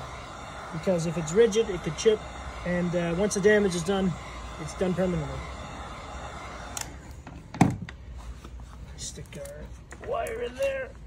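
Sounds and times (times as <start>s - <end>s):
heat gun blowing air: 0.0s - 10.8s
heat gun thunk on deck boards: 7.5s - 7.9s.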